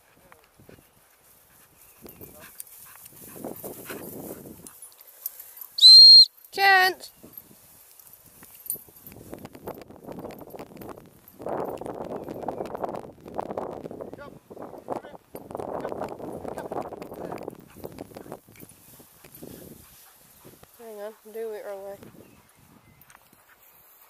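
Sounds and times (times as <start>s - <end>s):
dry grass rustling underfoot: 0.5s - 5.8s, 7.1s - 12.2s, 16.8s - 24.0s.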